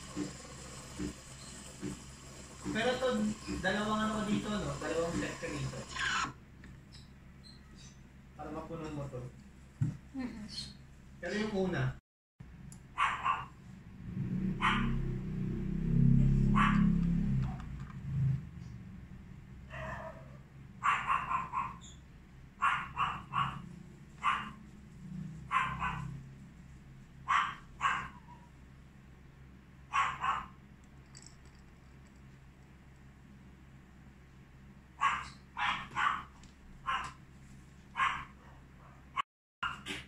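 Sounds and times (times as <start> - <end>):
dog barking: 13.0 - 13.6, 14.6 - 15.0, 16.5 - 17.0, 19.7 - 21.8, 22.6 - 24.6, 25.5 - 26.2, 27.2 - 28.5, 29.9 - 30.6, 35.0 - 37.2, 38.0 - 39.9.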